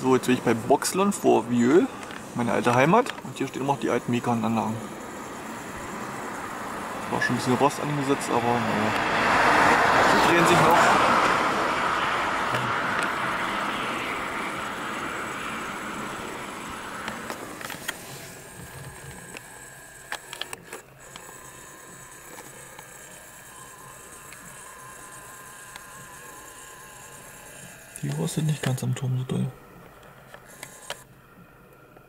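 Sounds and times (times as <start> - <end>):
passing car road noise: 5.6 - 18.4.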